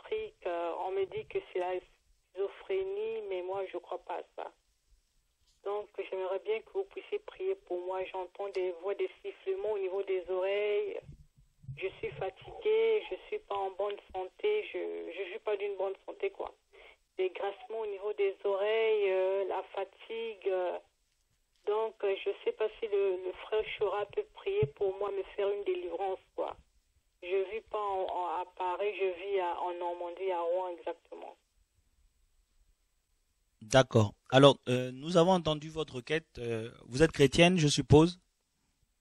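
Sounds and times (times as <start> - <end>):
woman speaking over telephone: 0.0 - 4.6, 5.6 - 11.1, 11.8 - 20.9, 21.6 - 31.5.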